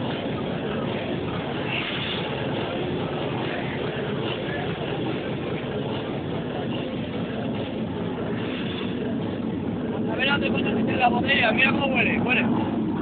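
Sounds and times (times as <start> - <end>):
crowd voices: 0.0 - 13.0
hard techno over sound system: 0.0 - 13.0.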